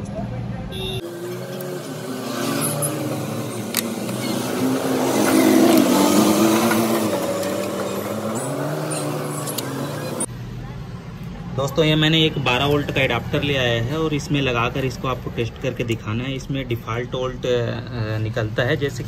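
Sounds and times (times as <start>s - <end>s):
vehicle engine passing by: 1.0s - 10.3s.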